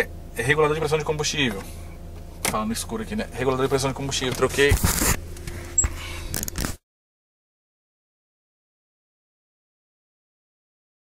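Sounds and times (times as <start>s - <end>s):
car engine idling: 0.0s - 6.4s.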